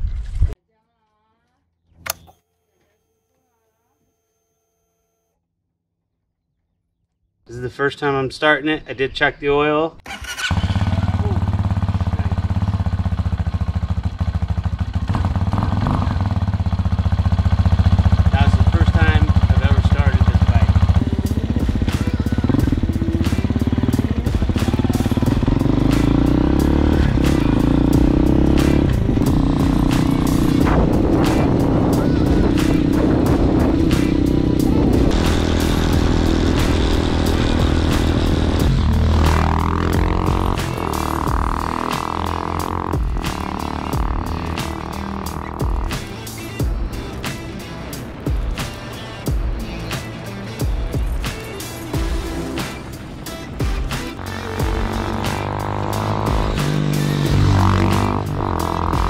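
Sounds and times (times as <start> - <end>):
motorcycle engine revving through gears: 10.1 - 50.0, 51.4 - 59.0
motorcycle engine idling: 10.1 - 59.0.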